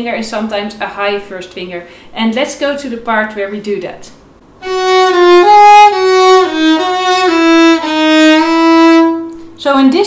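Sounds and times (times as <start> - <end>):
solo violin slow melody: 4.6 - 9.4.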